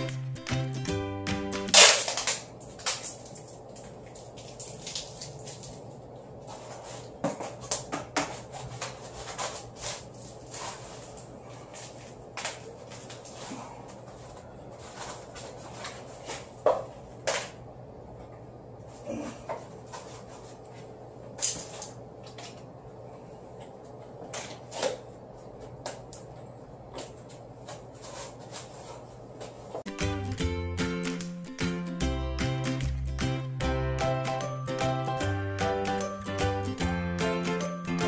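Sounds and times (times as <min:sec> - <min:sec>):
background music: 0:00.0 - 0:02.0, 0:29.9 - 0:38.0
low electrical hum: 0:00.0 - 0:30.7.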